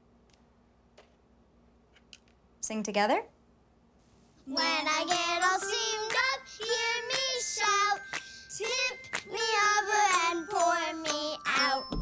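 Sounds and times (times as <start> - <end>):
girl singing into toy microphone: 4.4 - 12.0.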